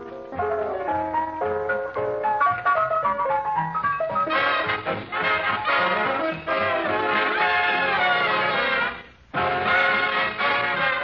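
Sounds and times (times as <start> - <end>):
orchestra playing up-tempo music: 4.2 - 11.0.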